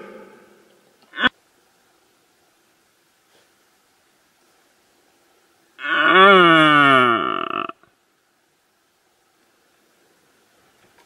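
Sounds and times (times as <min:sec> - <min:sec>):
deer stag roaring: 0:05.8 - 0:07.8.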